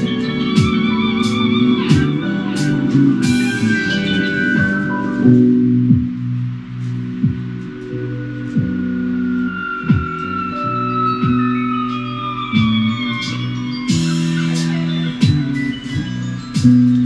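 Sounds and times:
electric bass: 0.0 - 17.0.

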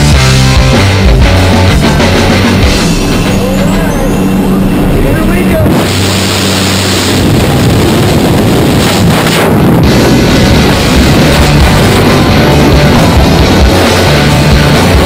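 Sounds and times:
loud rock music with vocals: 0.0 - 4.0, 9.6 - 15.0.

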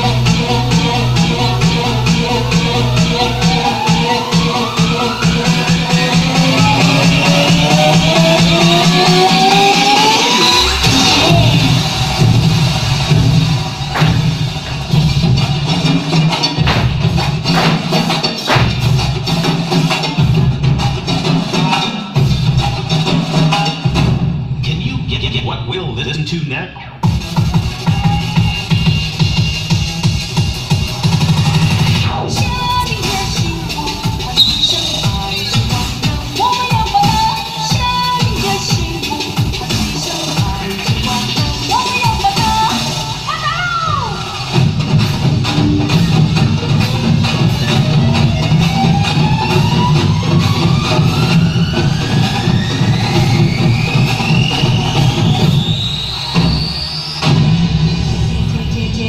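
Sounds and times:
loud dance music: 0.0 - 59.0.

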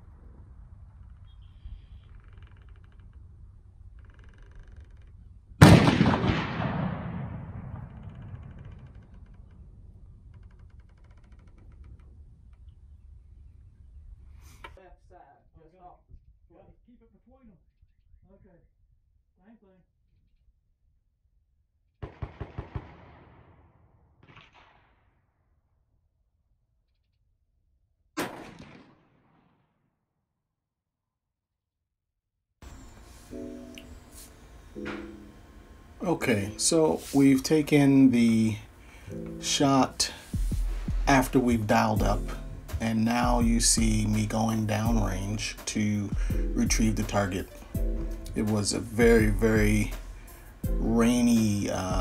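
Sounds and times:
rifle shot with echo: 5.6 - 8.9, 22.0 - 25.1, 28.2 - 29.8.

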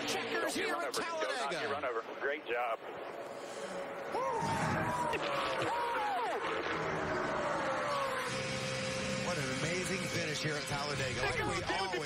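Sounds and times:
engine drone: 2.1 - 12.0
men whooping and yelling: 4.1 - 9.0.

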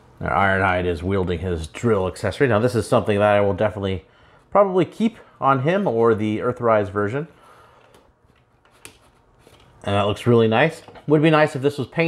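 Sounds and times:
man speaking: 0.2 - 7.4, 9.8 - 12.0.

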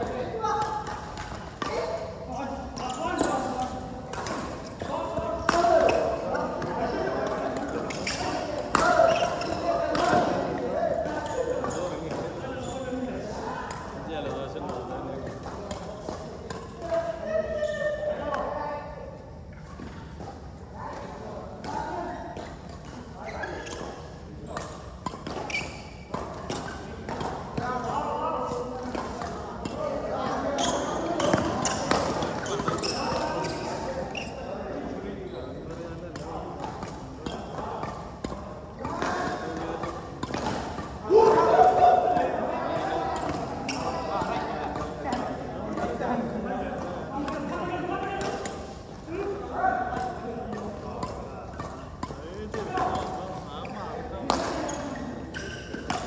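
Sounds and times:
players' voices: 0.0 - 56.0
rackets hitting shuttlecock: 0.5 - 12.5, 20.9 - 34.4, 35.6 - 56.0.

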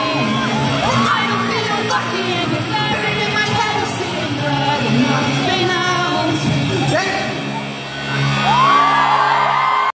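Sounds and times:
live rock band: 0.0 - 9.8.

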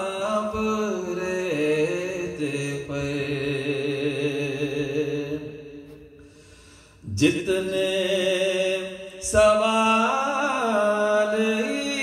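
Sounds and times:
man chanting: 0.0 - 5.8, 7.0 - 12.0.

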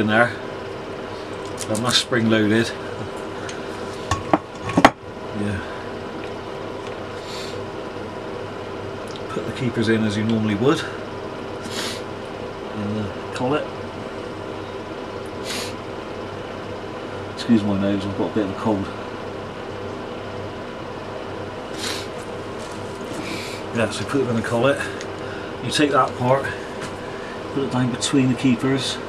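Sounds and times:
low background hum: 0.0 - 29.0
congested nose sniff: 7.2 - 7.6, 11.6 - 12.1, 15.4 - 15.8, 21.7 - 22.2, 23.1 - 23.7.

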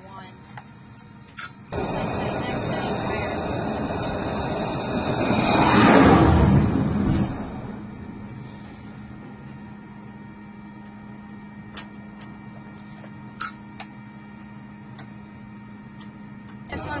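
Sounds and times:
electrical hum: 0.0 - 17.0
jet noise: 1.4 - 17.0.

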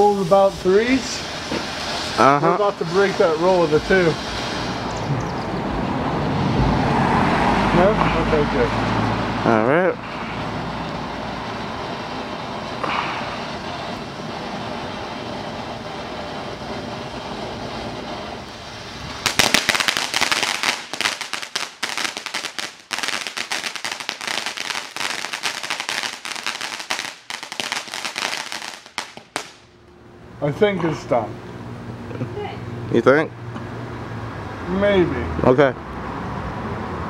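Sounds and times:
firework rapid crackling: 0.0 - 6.5, 9.5 - 29.7
firework fountain hissing: 0.0 - 29.8.

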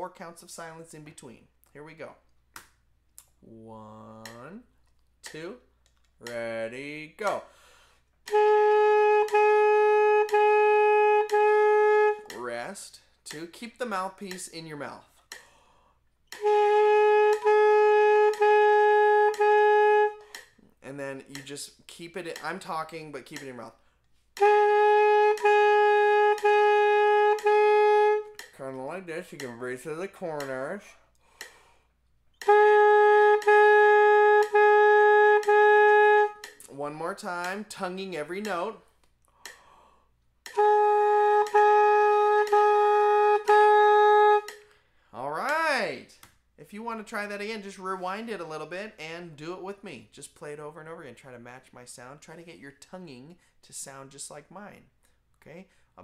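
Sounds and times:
saxophone mouthpiece tongued notes: 2.0 - 15.5, 16.2 - 50.1.

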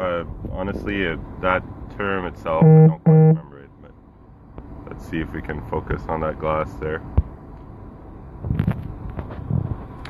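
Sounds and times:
low cockpit hum: 2.4 - 4.0.

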